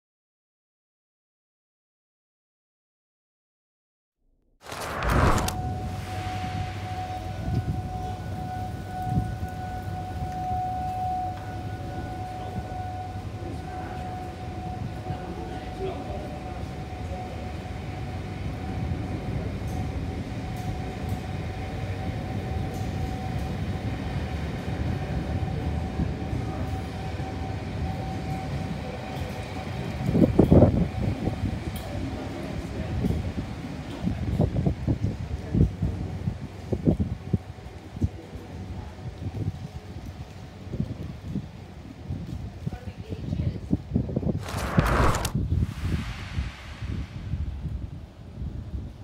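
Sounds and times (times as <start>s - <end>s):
high whine: 4.6s - 16.7s, 44.4s - 48.3s.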